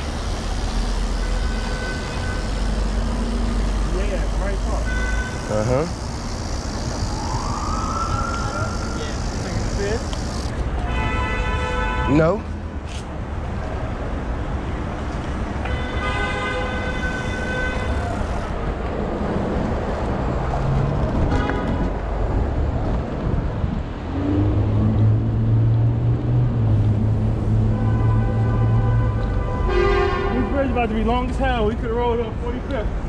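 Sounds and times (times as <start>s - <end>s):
car horn: 0.0s - 7.1s, 10.8s - 12.4s, 15.6s - 18.4s, 21.2s - 22.0s, 27.6s - 30.9s
city road traffic: 0.0s - 33.0s
wind rushing over microphone: 18.6s - 27.6s.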